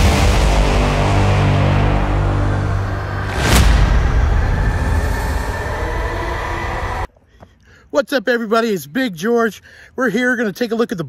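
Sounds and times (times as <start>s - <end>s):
dense soundtrack drone: 0.0s - 7.1s.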